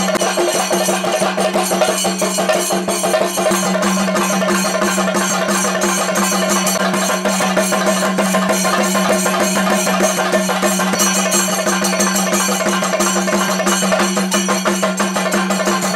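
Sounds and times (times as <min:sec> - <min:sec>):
rapid dense drumming: 0:00.0 - 0:15.9.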